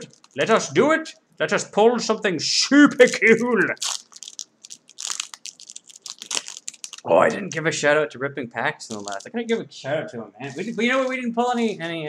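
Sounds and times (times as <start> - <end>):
foil wrapper crinkling: 0.0 - 0.6, 2.9 - 7.1, 8.8 - 9.3, 10.6 - 12.0.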